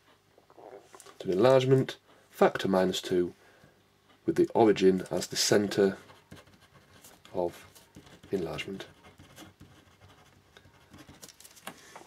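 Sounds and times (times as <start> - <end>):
pen scratching on paper: 5.5 - 11.3.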